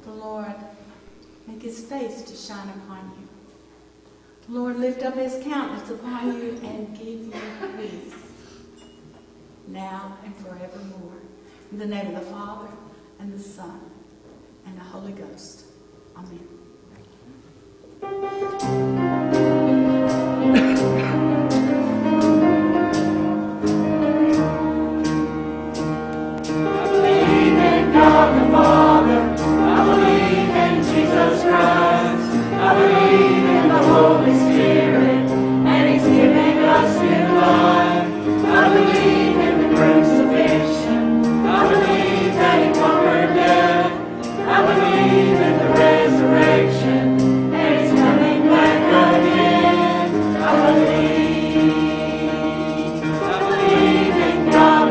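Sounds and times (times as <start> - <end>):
piano accompaniment: 18.0 - 54.9
choir singing a hymn: 18.2 - 54.9.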